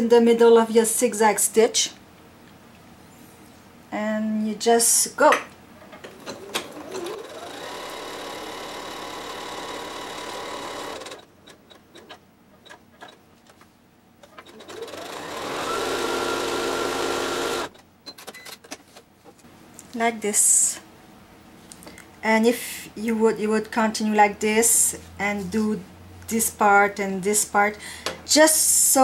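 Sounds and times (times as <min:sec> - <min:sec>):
sewing machine stitching: 0:06.1 - 0:13.1, 0:14.2 - 0:17.7.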